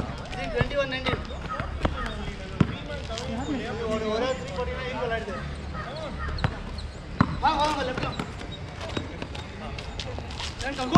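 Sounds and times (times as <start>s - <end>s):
players' voices: 0.0s - 10.9s
basketball bouncing on hard court: 2.6s - 2.8s, 7.2s - 7.4s.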